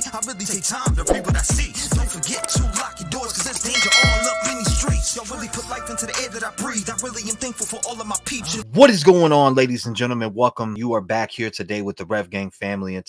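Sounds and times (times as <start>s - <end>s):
man rapping over a beat: 0.0s - 9.1s
notification ding: 3.8s - 5.1s.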